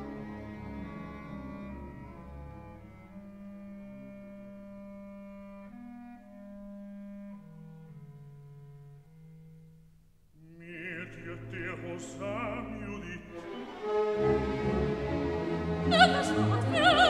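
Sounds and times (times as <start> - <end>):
orchestra playing softly: 10.6 - 17.0.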